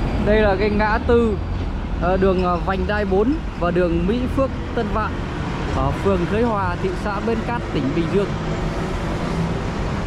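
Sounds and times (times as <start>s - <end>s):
passing vehicles rushing: 0.0s - 10.0s
truck engine hum: 0.0s - 10.0s.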